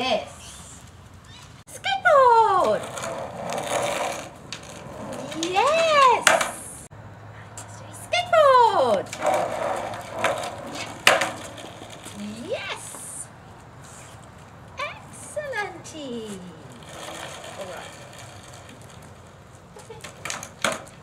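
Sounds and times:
person calling wordlessly: 0:05.3 - 0:06.7, 0:12.2 - 0:13.4.

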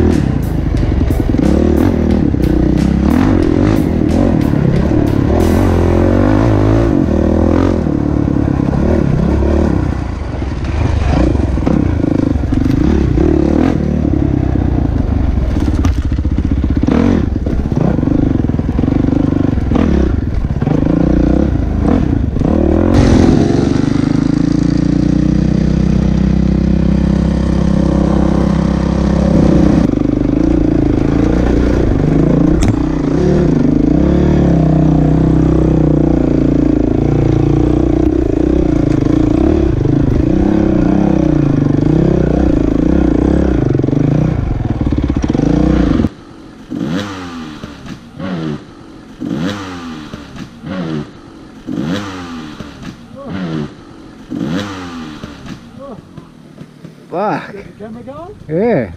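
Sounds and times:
dirt bike engine revving: 0:00.0 - 0:57.1
dirt bike engine under throttle: 0:00.0 - 0:58.9.

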